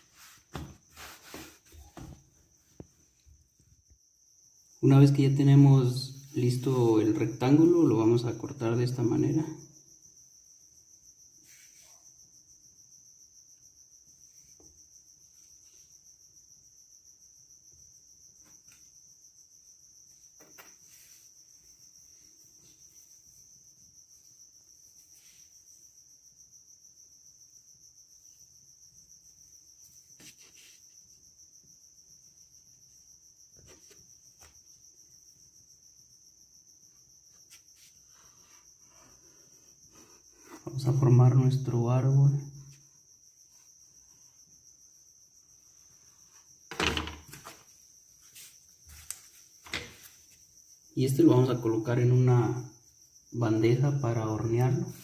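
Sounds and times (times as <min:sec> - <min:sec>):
cricket trill: 0:00.0 - 0:55.0.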